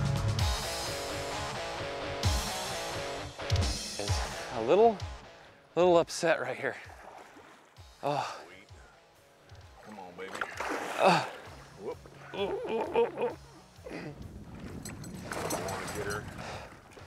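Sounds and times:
fish splashing in water: 0:09.7 - 0:11.7.

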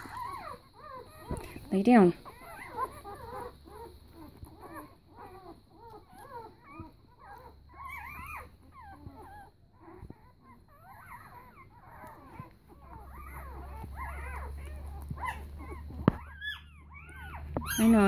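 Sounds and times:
puppies squeaking and whimpering: 0:00.0 - 0:18.0.

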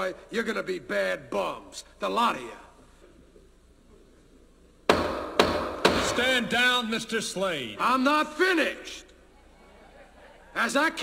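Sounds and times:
loud knock: 0:04.9 - 0:06.4.

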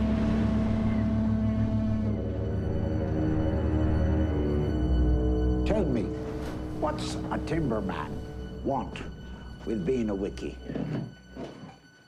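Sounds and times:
rushing wind and sea: 0:00.0 - 0:04.2
foghorn long low blast: 0:00.0 - 0:06.9.

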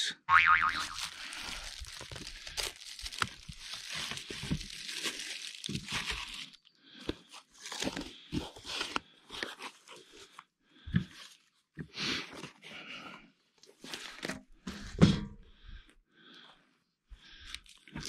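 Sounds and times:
cardboard and plastic wrap tearing: 0:00.8 - 0:06.6, 0:07.5 - 0:09.0
cardboard crunching and rustling: 0:00.8 - 0:10.3.

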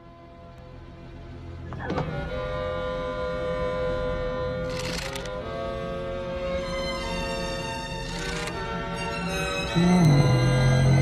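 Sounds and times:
orchestral music: 0:08.1 - 0:11.0.

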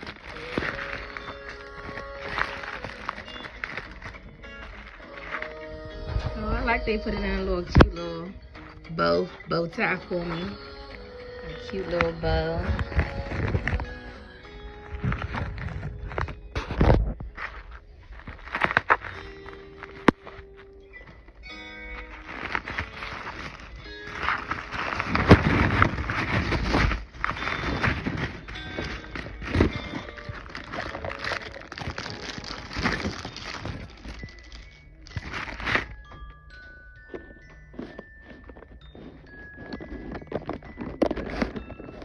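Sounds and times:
background music: 0:00.0 - 0:42.0
paper and plastic wrapping rustling: 0:00.0 - 0:42.0.

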